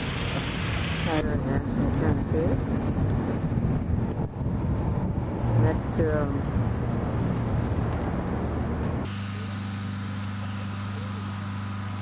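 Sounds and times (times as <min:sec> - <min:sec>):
wind buffeting microphone: 0:00.6 - 0:09.1.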